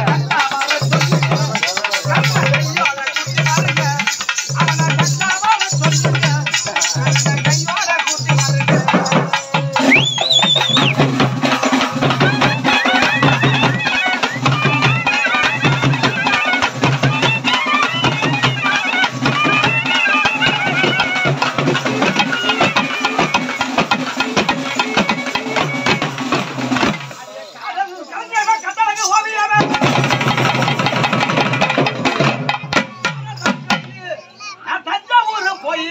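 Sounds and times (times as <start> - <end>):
double-headed drums beating: 0.0 - 27.5, 28.4 - 34.6.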